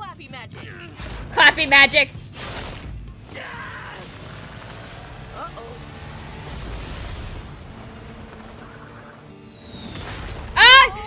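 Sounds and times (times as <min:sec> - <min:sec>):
background music: 0:00.0 - 0:11.0
booms and rumbling impacts: 0:04.3 - 0:09.0.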